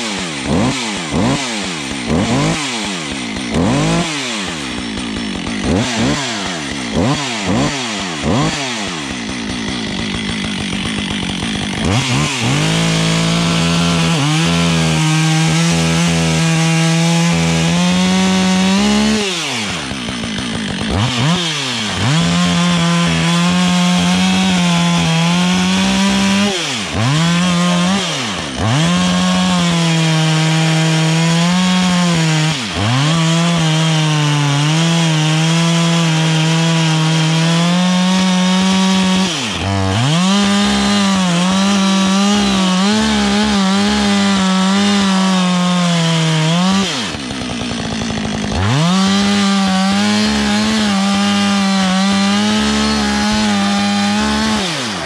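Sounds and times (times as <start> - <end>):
chainsaw cutting wood: 0.0 - 55.0.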